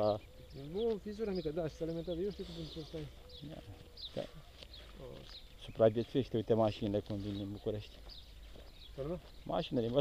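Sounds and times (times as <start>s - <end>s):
faint high bird chirps: 0.0s - 6.3s.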